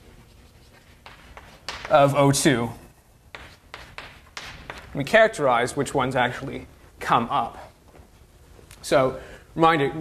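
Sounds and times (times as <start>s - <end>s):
writing on a board: 0.0s - 5.1s.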